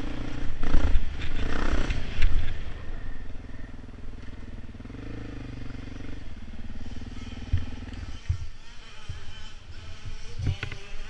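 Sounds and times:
off-road vehicle engine revving: 0.0 - 10.1.

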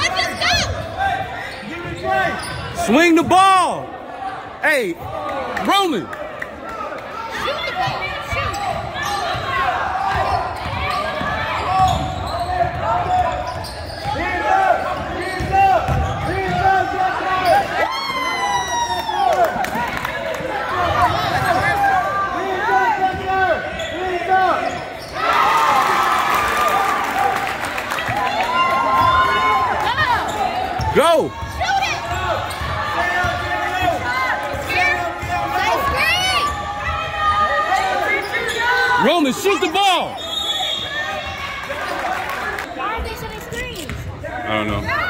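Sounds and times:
sneakers squeaking: 0.0 - 3.3, 7.3 - 18.9, 20.8 - 22.1, 22.9 - 25.6, 28.6 - 45.0
crowd voices in echoing hall: 0.0 - 45.0.

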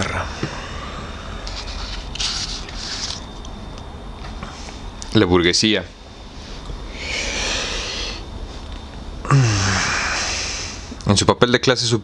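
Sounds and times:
person breathing in: 6.9 - 8.2, 9.3 - 11.0.

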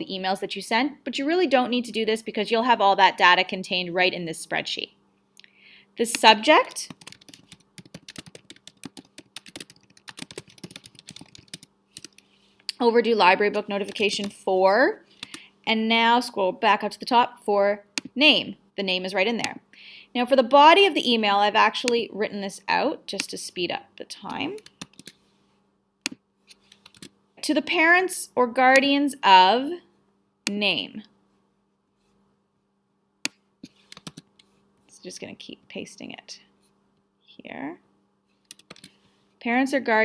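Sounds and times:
faint steady hum: 0.0 - 40.0
typing on computer keyboard: 6.7 - 12.2, 13.8 - 14.4, 24.6 - 25.2, 26.7 - 27.1, 33.9 - 34.3, 38.5 - 38.9.

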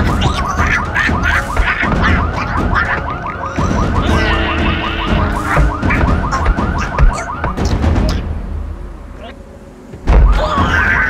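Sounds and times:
car alarm whooping: 0.0 - 8.3
music with heavy bass: 3.7 - 7.8.

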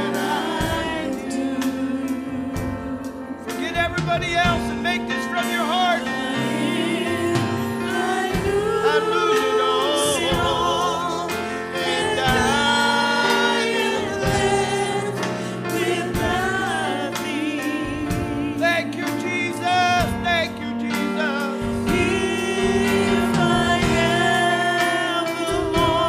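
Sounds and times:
congregation singing gospel song: 0.0 - 26.0
keyboard chords: 0.0 - 26.0
steady drum beat: 0.0 - 26.0.

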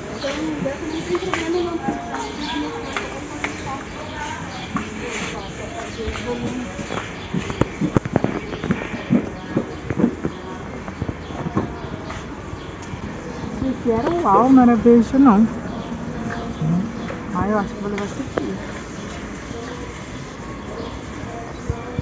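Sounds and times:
shoppers' voices: 0.0 - 22.0.

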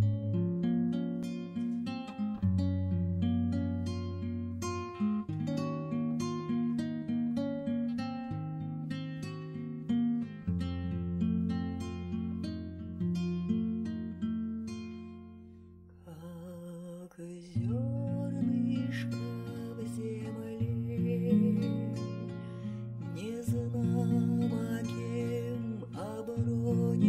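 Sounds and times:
plucked acoustic guitar: 0.0 - 27.0.

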